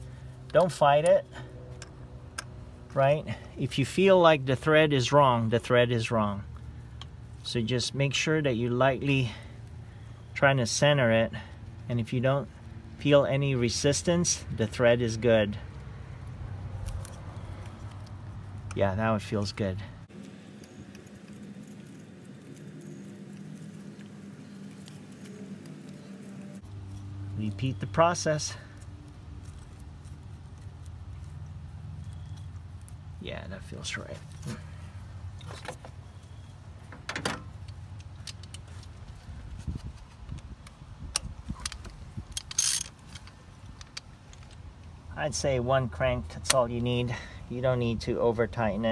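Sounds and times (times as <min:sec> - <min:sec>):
metallic clicks and scraping: 0:15.5 - 0:33.1, 0:33.8 - 0:45.4
metallic socket clicks and clinks: 0:37.5 - 0:38.7, 0:41.1 - 0:44.4
metal tool rattle: 0:42.4 - 0:43.3.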